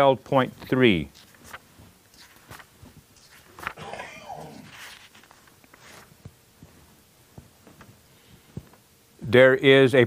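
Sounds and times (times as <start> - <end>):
book pages rustling: 0.4 - 8.8
soft taps: 6.2 - 8.8.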